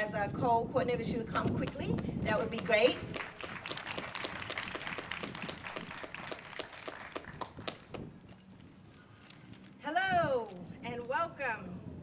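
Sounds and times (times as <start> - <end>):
crowd applause: 3.0 - 8.0.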